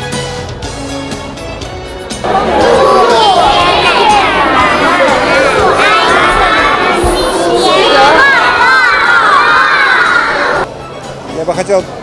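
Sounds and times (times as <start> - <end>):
children shouting together: 2.3 - 10.7.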